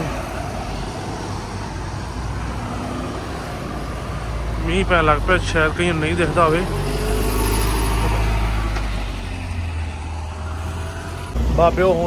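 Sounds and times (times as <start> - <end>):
low rumble of passing traffic: 0.0 - 12.0.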